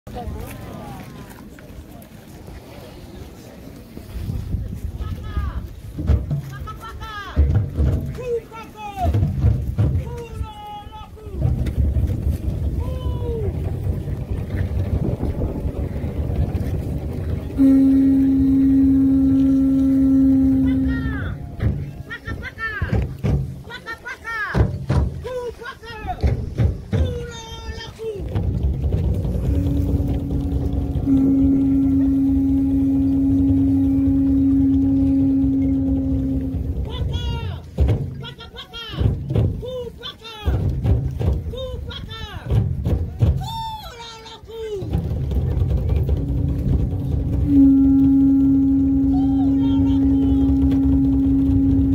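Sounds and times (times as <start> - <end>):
wind rumble on microphone: 0.1 - 6.8, 9.2 - 23.6, 25.9 - 38.3, 44.8 - 51.9
conch shell trumpet note: 17.6 - 21.6, 29.3 - 36.9, 47.2 - 51.9.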